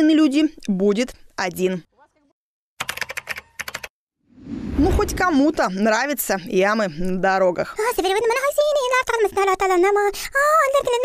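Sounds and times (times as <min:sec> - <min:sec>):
typing clicks: 0:02.8 - 0:03.9.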